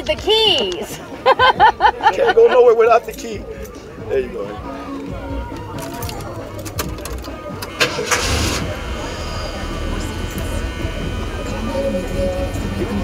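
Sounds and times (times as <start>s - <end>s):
starter clicks: 5.5s - 8.4s
engine starting and idling: 6.3s - 12.8s.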